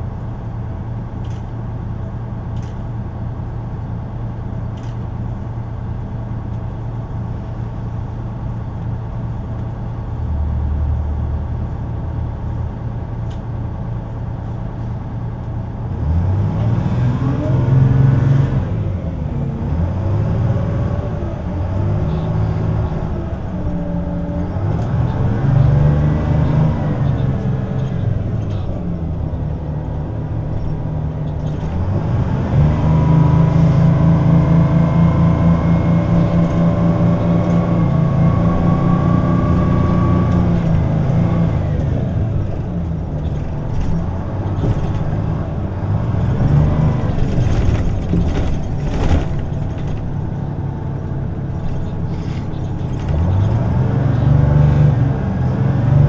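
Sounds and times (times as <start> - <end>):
bus engine and road drone: 0.0 - 56.0.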